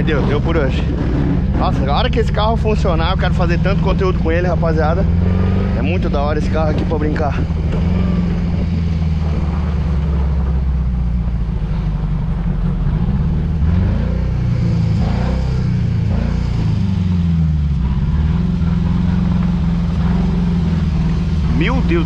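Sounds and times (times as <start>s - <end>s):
car engine revving and misfiring: 0.0s - 22.0s.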